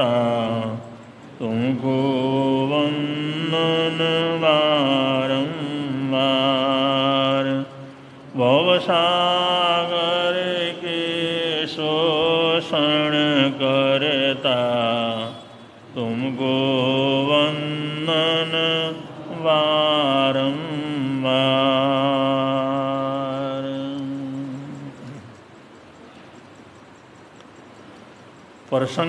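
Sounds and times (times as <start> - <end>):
man singing a hymn: 0.0 - 7.7, 8.3 - 25.3.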